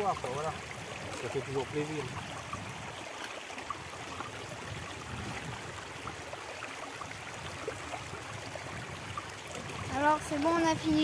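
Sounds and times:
river water running over stones: 0.0 - 11.0.

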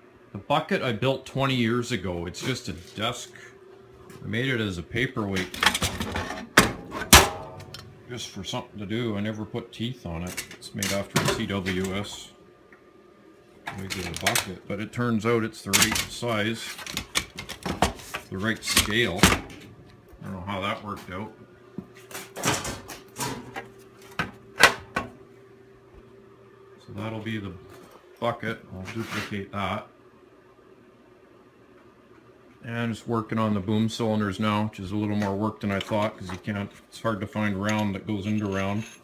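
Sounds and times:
handling knocks and scrapes: 5.3 - 7.9, 15.9 - 19.7.

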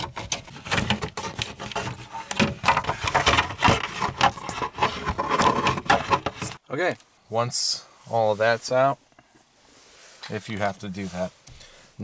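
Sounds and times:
plastic scraping and clicking: 0.0 - 6.6.

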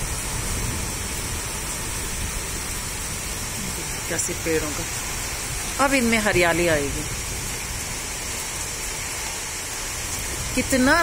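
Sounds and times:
heavy rain pouring: 0.0 - 11.0.

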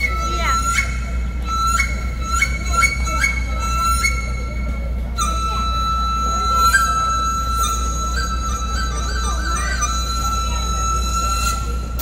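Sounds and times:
bamboo flute melody: 0.0 - 12.0
steady low hum: 0.0 - 12.0.

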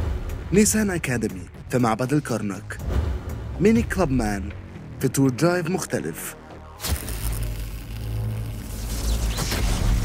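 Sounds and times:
music: 0.0 - 10.0.

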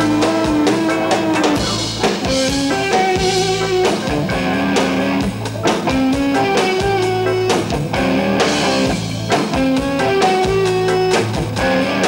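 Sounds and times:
bass guitar: 0.0 - 12.0
melodic electric guitar line: 0.0 - 12.0
steady drum beat: 0.0 - 12.0.

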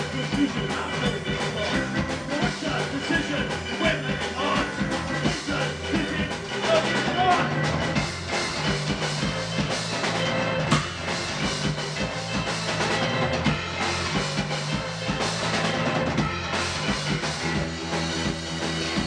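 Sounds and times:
bass guitar low notes: 0.0 - 19.0
drum kit: 0.0 - 19.0
keyboard: 0.0 - 19.0.

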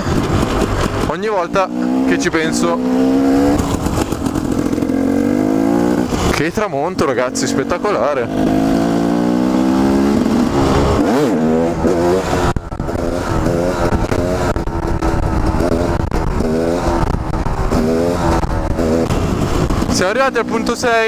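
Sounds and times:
motorcycle engine revving: 0.0 - 21.0
wind rumble on microphone: 8.3 - 20.4.

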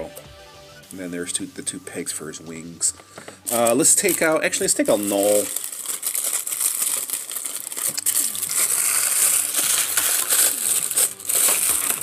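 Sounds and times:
plastic and cardboard crinkling: 2.8 - 12.0.

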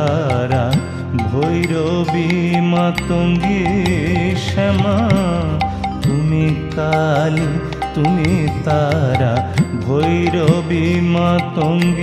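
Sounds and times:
ornamented wavering melody: 0.0 - 12.0
percussion strokes: 0.0 - 12.0.

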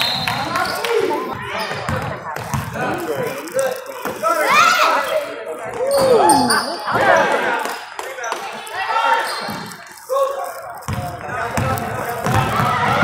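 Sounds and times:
basketball bouncing on wooden floor: 10.9 - 13.0.

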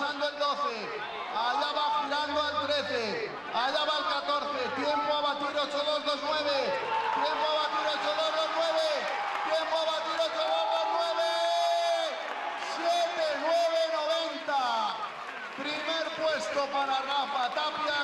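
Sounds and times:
man commentating excitedly: 0.0 - 18.0.

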